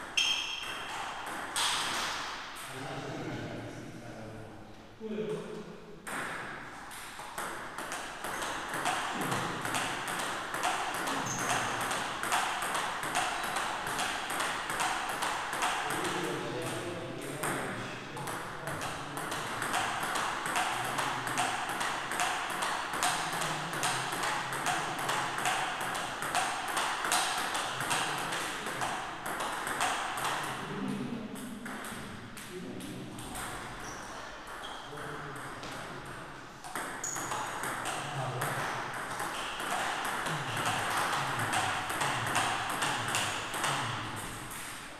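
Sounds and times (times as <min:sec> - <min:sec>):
ball strikes from other tables: 0:00.0 - 0:02.7, 0:06.1 - 0:16.8, 0:36.6 - 0:44.8.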